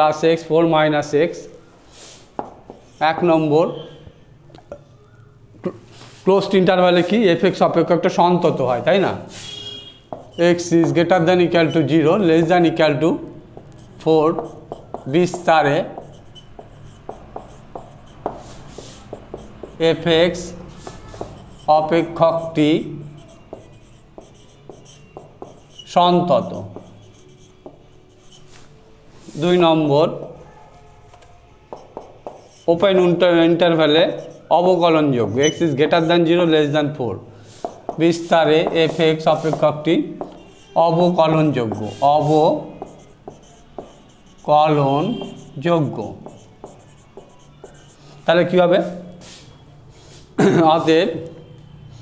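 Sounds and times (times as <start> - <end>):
marker writing on whiteboard: 2.1 - 4.0, 6.4 - 49.4.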